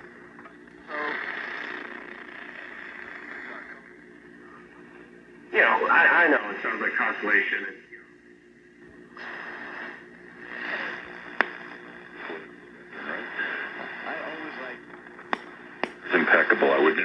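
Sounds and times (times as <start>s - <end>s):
sharp static click: 9.2s - 12.5s, 14.9s - 16.3s
hissy radio voice: 12.1s - 14.8s, 16.0s - 17.0s.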